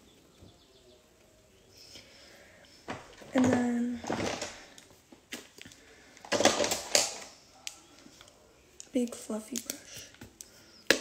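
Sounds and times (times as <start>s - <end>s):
makeup items rattling: 6.2s - 7.3s.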